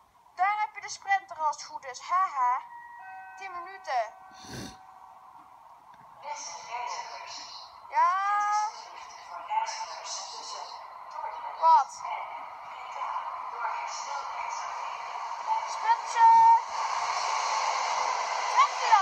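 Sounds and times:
chime-like tones: 2.4 - 5.6
train approaching with hiss: 4.1 - 5.2, 12.2 - 19.0.

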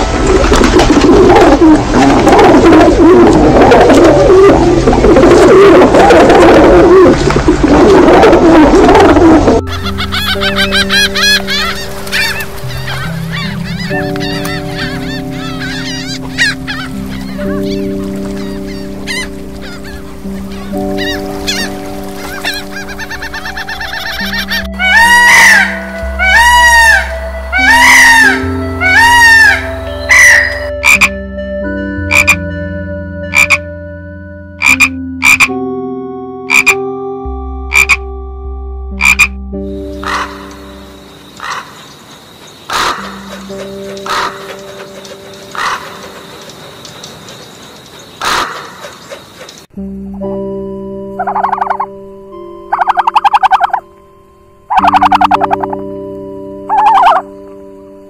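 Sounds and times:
soft background music: 0.0 - 47.4, 49.7 - 58.0
peacock calls: 1.4 - 31.1, 39.0 - 49.7, 51.2 - 51.9, 52.7 - 53.9, 54.7 - 55.8, 56.6 - 57.4
rapid gull calls: 7.9 - 31.1, 34.6 - 35.6, 36.5 - 36.8, 39.0 - 42.0, 42.7 - 49.7, 51.2 - 52.0, 52.7 - 53.8, 54.7 - 55.8, 56.6 - 57.4.

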